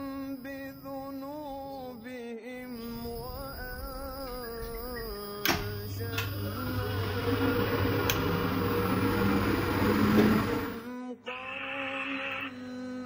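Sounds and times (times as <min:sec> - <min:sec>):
scanner machinery humming and whirring: 0:00.0 - 0:11.0.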